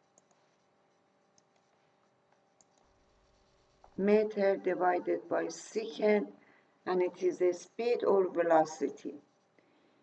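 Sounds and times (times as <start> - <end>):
soft computer clicks: 0.0 - 0.6, 1.3 - 3.0.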